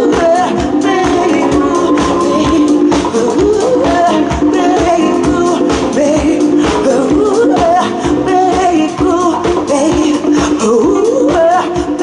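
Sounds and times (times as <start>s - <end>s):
congas: 0.0s - 12.0s
live cumbia band: 0.0s - 12.0s
person singing lead vocal: 0.0s - 12.0s.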